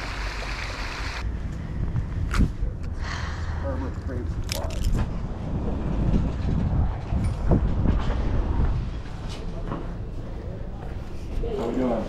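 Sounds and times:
low rumble: 1.2 - 10.8
wind on microphone: 1.6 - 9.3.

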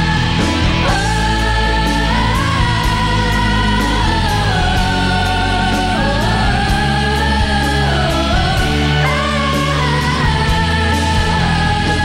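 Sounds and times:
band with bass and beat: 0.0 - 12.0
people singing pop songs: 0.0 - 12.0.

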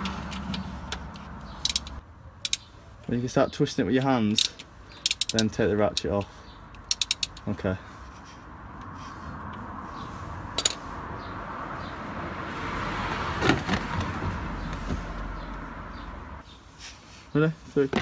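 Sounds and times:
vehicle passing by: 0.0 - 2.0, 7.8 - 16.4.

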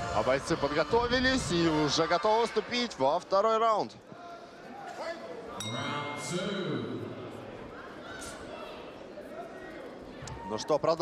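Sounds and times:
faint voices in a hall: 0.0 - 11.0
boxing ring bell ringing: 5.6 - 6.9.

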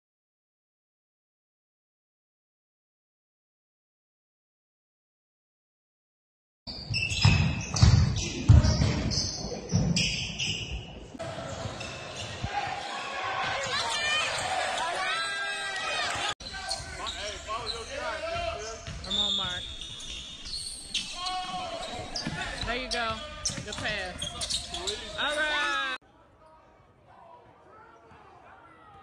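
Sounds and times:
sneakers squeaking on court: 6.7 - 26.0
basketball bouncing on hardwood floor: 6.9 - 10.6, 18.8 - 19.6
voices of players and spectators: 7.2 - 29.0.

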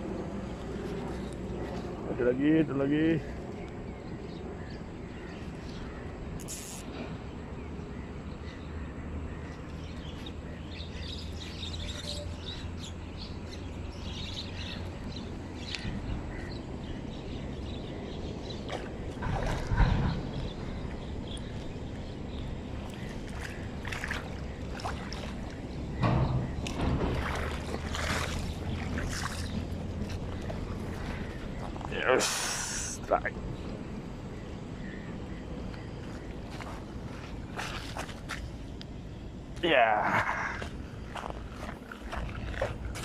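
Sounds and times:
low rumble on microphone: 0.0 - 32.0
knocks and rustles: 19.2 - 20.6, 25.9 - 30.7.

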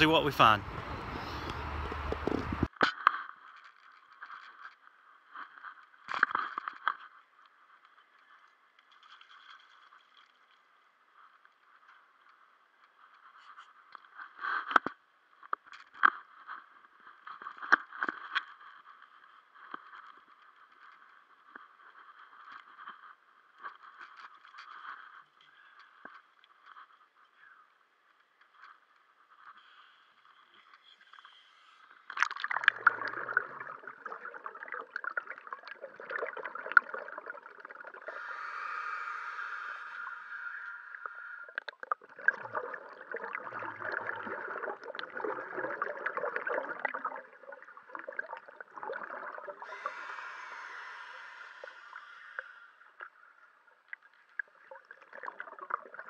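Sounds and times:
underwater regulator breathing bubbles: 31.3 - 53.2.

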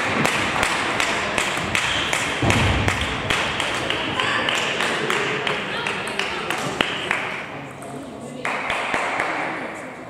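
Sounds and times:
heavy low thud: 2.4 - 3.8.

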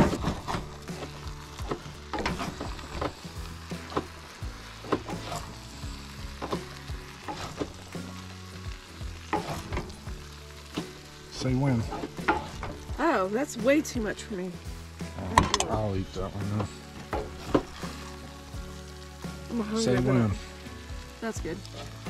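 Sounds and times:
wooden spoon scraping a skillet: 0.0 - 8.2, 9.2 - 12.9, 16.4 - 18.5
food sizzling in pans: 0.0 - 22.0.

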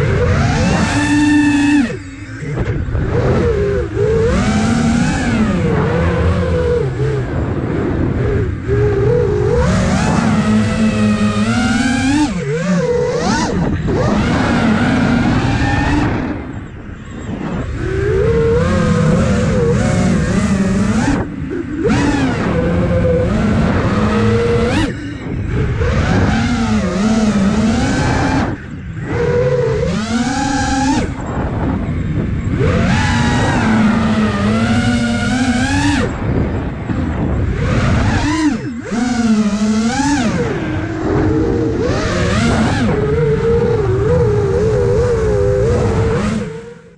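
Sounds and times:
drone propellers whining: 0.0 - 46.9.

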